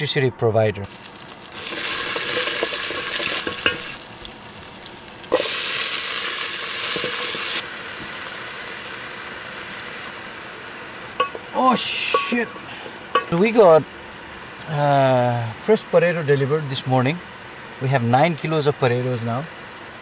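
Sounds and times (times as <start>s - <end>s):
food sizzling in a metal pan: 0.8s - 20.0s
spoon knocking on pan: 2.1s - 4.0s, 11.2s - 13.4s.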